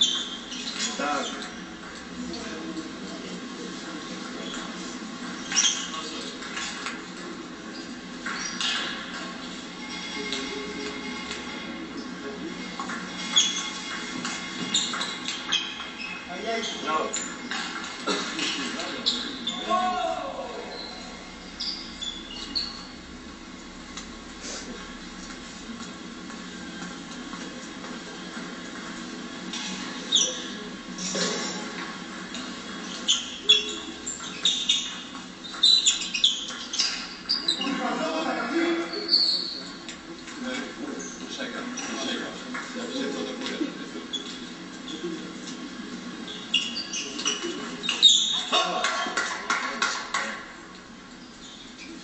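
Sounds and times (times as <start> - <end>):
shoe squeaks on floor: 0.0 - 1.7, 4.4 - 6.4, 7.7 - 9.0, 13.1 - 17.4, 20.7 - 23.0, 30.0 - 31.3, 32.8 - 37.7, 38.8 - 39.8, 46.2 - 48.5.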